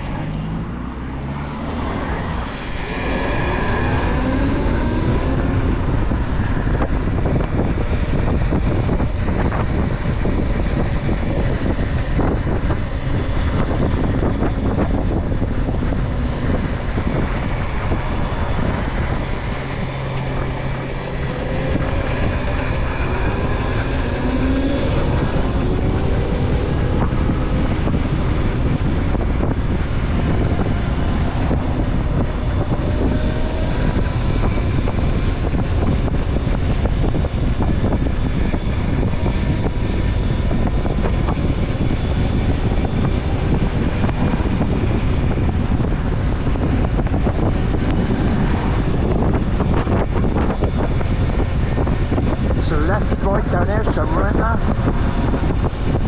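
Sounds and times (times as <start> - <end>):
wind buffeting microphone: 0.0 - 56.0
electric motor whine: 0.5 - 52.4.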